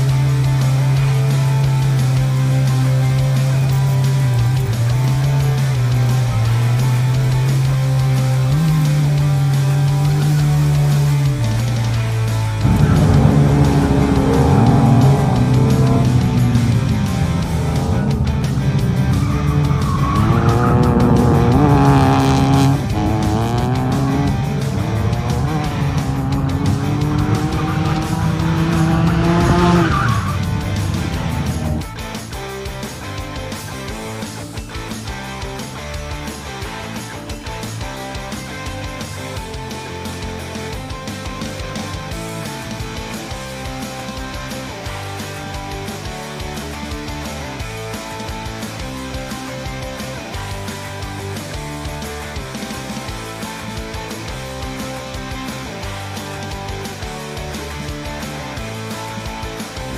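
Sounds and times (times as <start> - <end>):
rock music with guitar: 0.0 - 59.9
rotary engine revving: 0.5 - 32.0
tyres squealing: 18.9 - 21.8.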